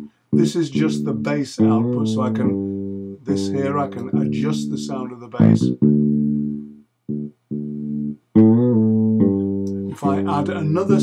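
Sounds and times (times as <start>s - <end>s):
fretless electric bass notes: 0.0s - 11.0s.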